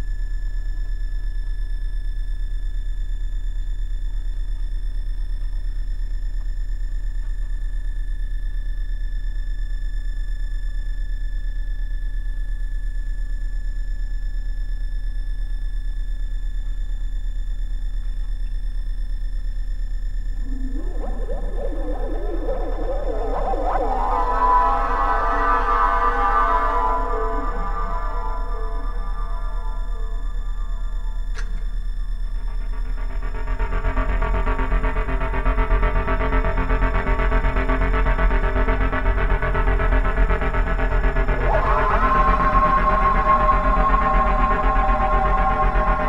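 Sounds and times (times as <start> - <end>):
deep synthesizer drone: 20.2 - 46.0
wavering pitch-bending synth: 20.3 - 31.6, 32.5 - 46.0
faint high tones: 20.3 - 32.6, 38.3 - 46.0.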